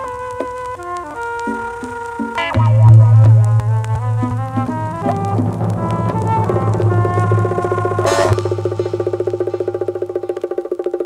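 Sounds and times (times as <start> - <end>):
pitched instrument lines: 0.0 - 10.6
fast-pulsing tone: 2.4 - 9.4
deep bass note: 2.4 - 9.9.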